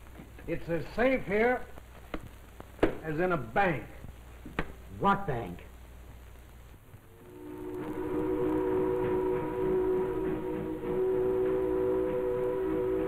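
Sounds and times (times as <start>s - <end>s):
steam ship whistle blast: 7.2s - 13.0s.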